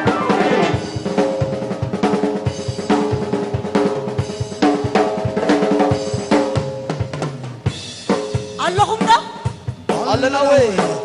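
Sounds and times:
drum kit steady beat: 0.0s - 11.0s
held band chords: 0.0s - 11.0s.

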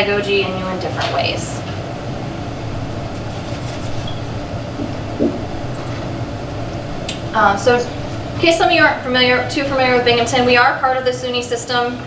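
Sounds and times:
low hum: 1.6s - 10.6s.

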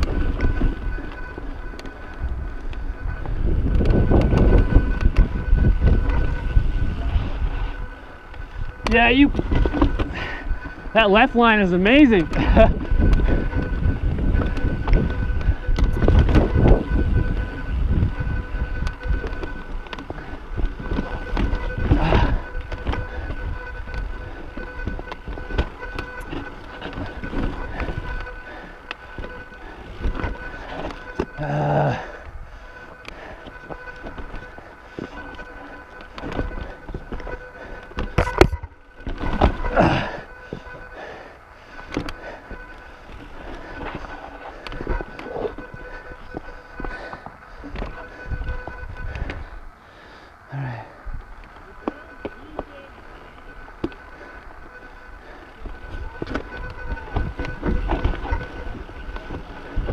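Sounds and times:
bike tyre rumble and clatter: 0.0s - 59.9s.

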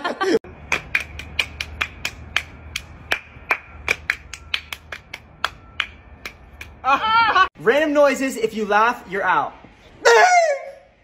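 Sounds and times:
sharp hand claps: 0.6s - 6.8s.

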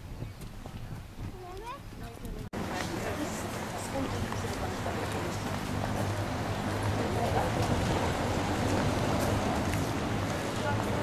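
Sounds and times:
busy outdoor background: 0.0s - 11.0s
distant voices: 1.4s - 11.0s.

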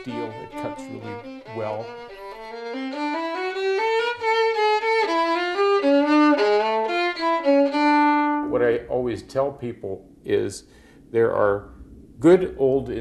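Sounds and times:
bowed violin melody: 0.0s - 8.9s.

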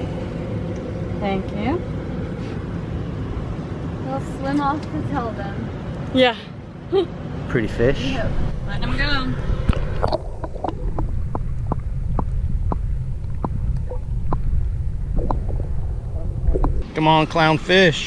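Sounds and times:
underwater low rumble: 8.3s - 16.9s.

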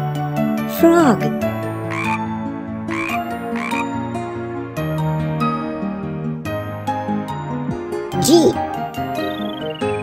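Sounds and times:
gentle background music: 0.0s - 10.0s
cartoon frog croaks: 1.8s - 2.3s, 2.9s - 4.0s.

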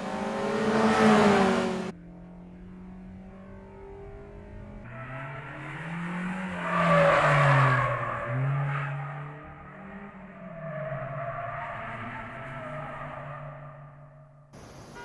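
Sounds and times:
car engine revving: 0.0s - 14.3s.

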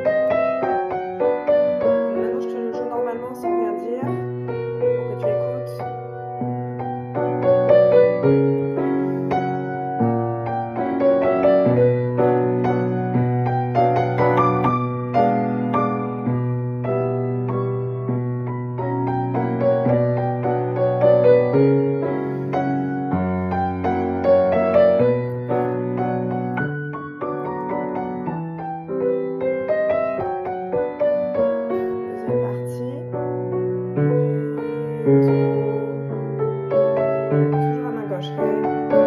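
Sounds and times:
upright piano waltz: 0.0s - 39.0s.

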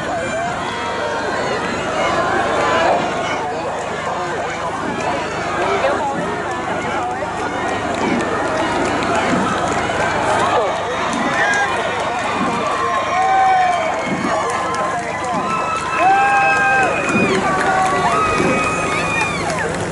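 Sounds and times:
spectators shouting and cheering: 0.0s - 19.9s.

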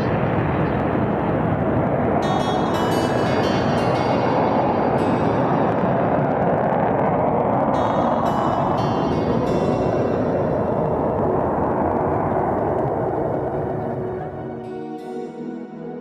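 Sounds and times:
jet roar: 0.0s - 15.0s
background music: 2.2s - 16.0s.

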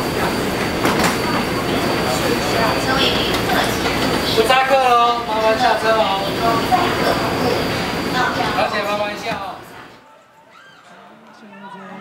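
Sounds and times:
train car noise with high whine: 0.0s - 10.0s
faint passenger voices: 0.0s - 12.0s.

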